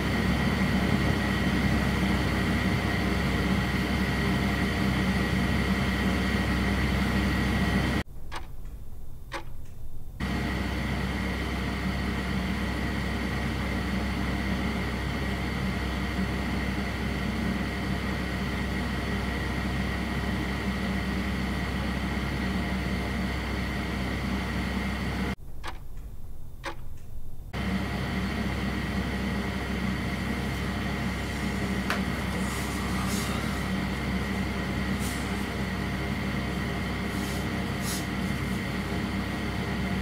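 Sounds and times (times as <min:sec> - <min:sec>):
low hum: 0:25.2 - 0:40.0
thin high whine: 0:25.5 - 0:40.0
faint clicks: 0:25.6 - 0:27.1.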